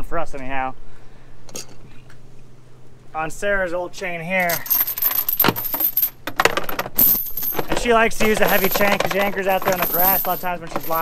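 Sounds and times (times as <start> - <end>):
anchor chain rattling and clanking: 4.4 - 11.0.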